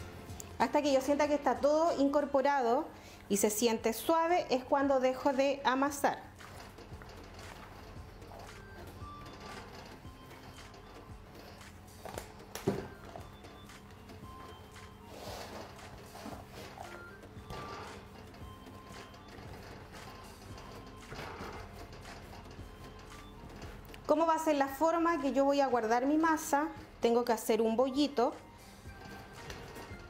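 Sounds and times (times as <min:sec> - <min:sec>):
faint background music: 0:00.0 - 0:30.0.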